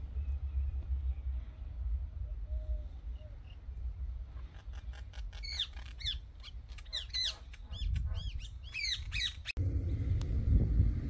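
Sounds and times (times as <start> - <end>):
bird calling rapidly: 4.3 - 9.6
wind rumble on microphone: 7.3 - 11.0.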